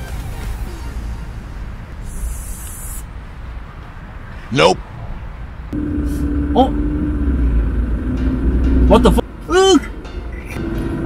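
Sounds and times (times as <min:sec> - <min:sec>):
car engine rumble: 0:01.0 - 0:11.0.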